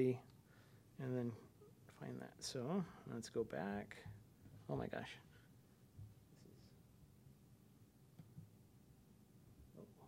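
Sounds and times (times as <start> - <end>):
faint small sounds: 0.0 - 10.0.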